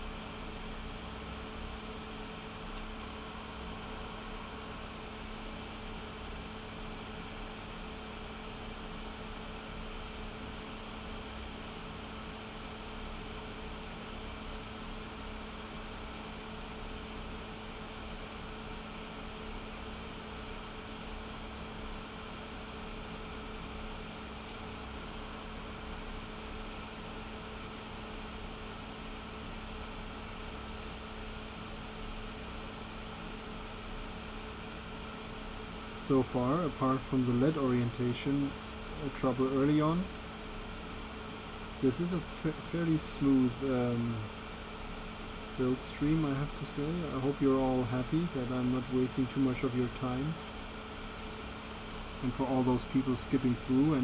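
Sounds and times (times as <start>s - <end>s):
electric fan whirring: 0.0s - 54.0s.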